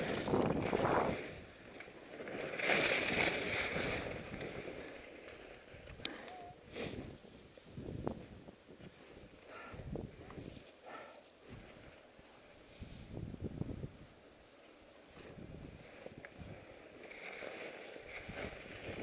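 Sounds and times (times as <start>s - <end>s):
skis scraping on hard snow: 0.0s - 6.0s, 14.6s - 19.0s.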